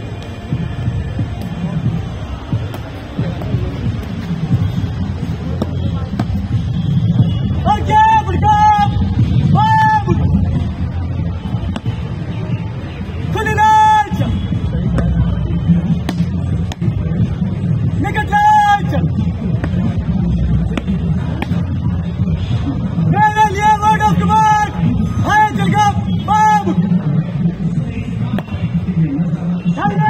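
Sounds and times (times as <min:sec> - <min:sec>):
low outdoor rumble: 0:00.0 - 0:29.9.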